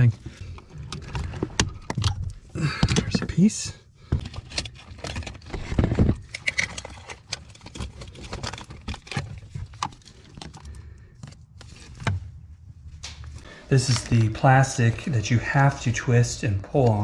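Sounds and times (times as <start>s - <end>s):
wiring and connectors rattling: 0.0s - 15.8s.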